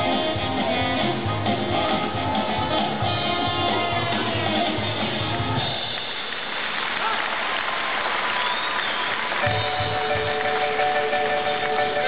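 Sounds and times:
guitar-led music with a beat: 0:00.0 - 0:05.7, 0:09.4 - 0:12.0
audience applauding: 0:02.0 - 0:12.0.

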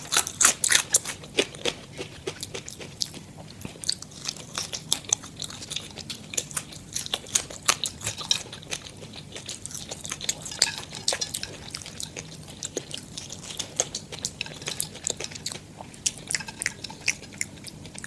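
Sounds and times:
chewing and crunching fried food: 0:00.0 - 0:18.0.

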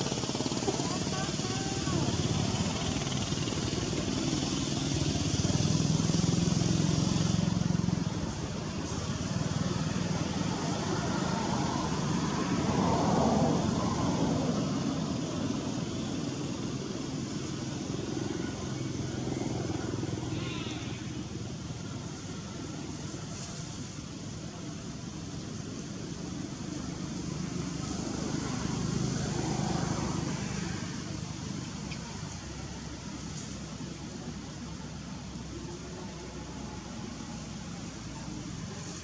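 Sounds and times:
steady high hiss: 0:00.0 - 0:39.0
vehicle engines passing: 0:00.0 - 0:39.0.

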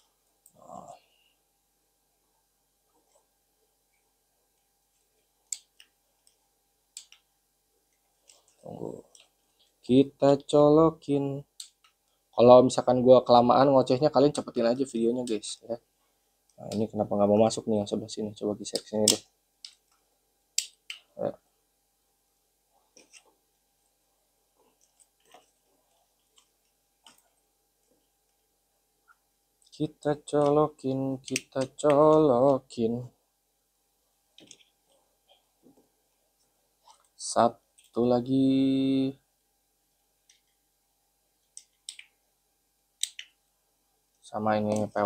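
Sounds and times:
plastic connectors clicking: 0:07.0 - 0:07.3, 0:31.2 - 0:32.6, 0:41.5 - 0:42.2, 0:43.0 - 0:43.4, 0:44.7 - 0:45.0.

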